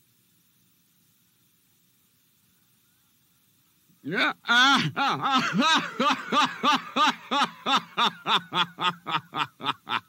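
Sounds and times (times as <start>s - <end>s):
man laughing: 4.1s - 10.0s.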